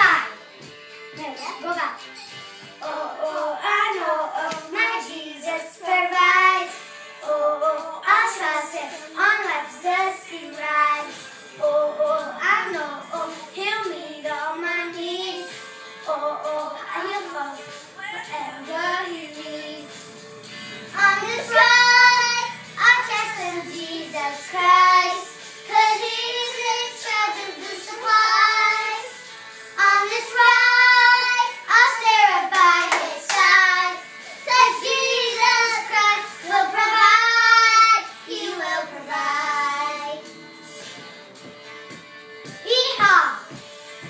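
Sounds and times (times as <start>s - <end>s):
girls singing: 2.7s - 20.2s, 20.8s - 40.8s
hand claps: 4.4s - 4.7s, 32.5s - 33.6s.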